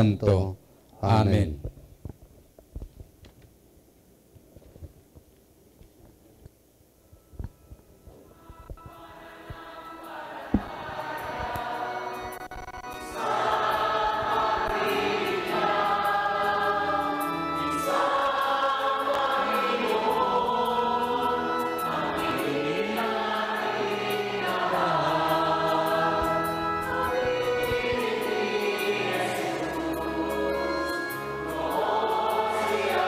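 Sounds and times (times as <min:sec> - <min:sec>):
choir singing a hymn: 0:08.3 - 0:33.0.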